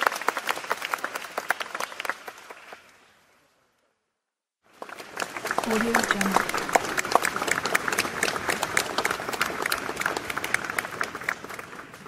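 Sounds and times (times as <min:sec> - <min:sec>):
crowd applause: 0:00.0 - 0:03.1, 0:04.6 - 0:12.0.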